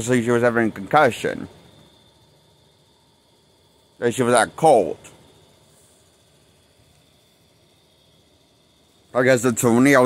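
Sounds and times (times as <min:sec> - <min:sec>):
steady high-pitched hiss: 0:00.0 - 0:10.0.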